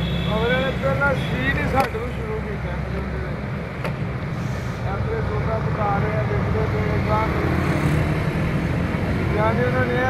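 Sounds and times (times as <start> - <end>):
low rumble of traffic: 0.0 - 10.0.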